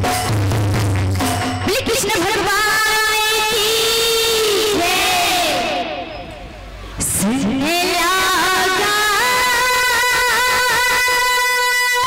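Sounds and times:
girls singing over a pa: 3.2 - 6.0, 7.6 - 12.0.

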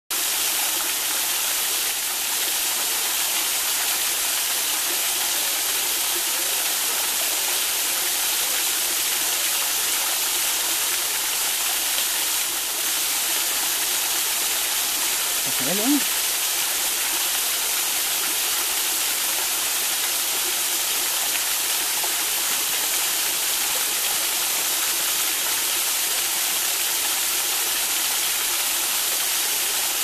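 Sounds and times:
stream water splashing over rocks: 0.2 - 30.0.

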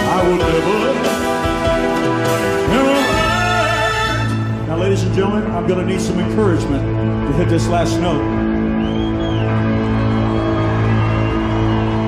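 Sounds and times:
live band holding a chord: 0.0 - 4.8.

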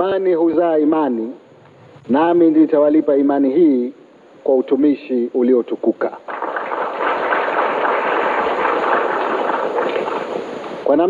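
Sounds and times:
audience applauding: 6.3 - 10.9.

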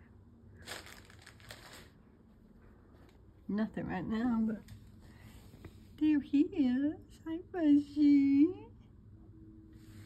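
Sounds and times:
fabric curtain rustling: 0.6 - 2.0.

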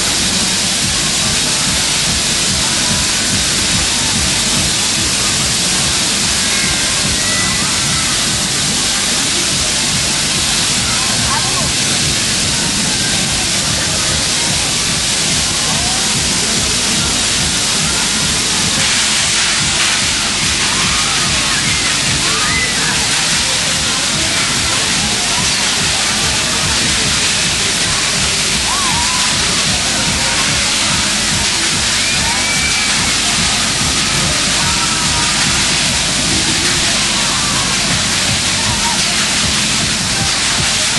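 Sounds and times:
fairground music: 0.0 - 40.9
rushing noise of spinning ride: 0.0 - 40.9
voices: 0.0 - 40.9.

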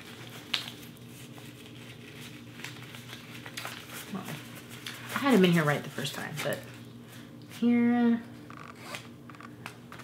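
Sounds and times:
faint steady hum: 0.0 - 10.0.

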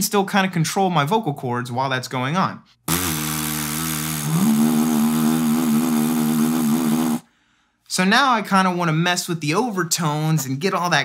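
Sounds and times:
person singing through throat: 2.9 - 7.2
lips buzzing a low note: 2.9 - 7.3.

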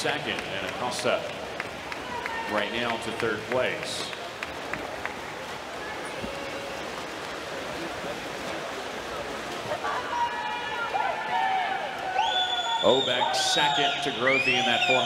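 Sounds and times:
crowd noise: 0.0 - 15.0
water splashing: 0.0 - 15.0.

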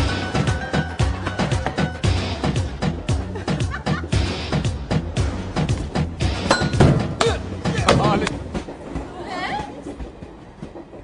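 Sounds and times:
train carriage rumbling: 0.0 - 11.0
wheels clicking on rails: 7.2 - 11.0.

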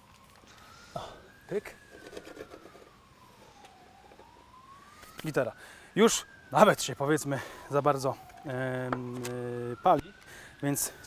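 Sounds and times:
faint siren wailing: 0.0 - 11.0.

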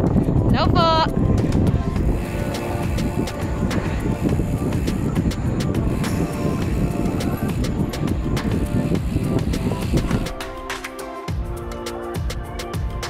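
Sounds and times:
wind rumbling on microphone: 0.0 - 10.4
background music with light beat: 0.0 - 13.0.

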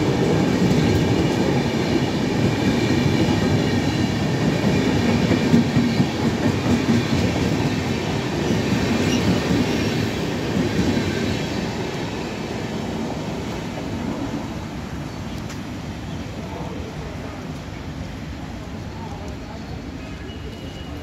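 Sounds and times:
train wheels rumbling on rails: 0.0 - 21.0.

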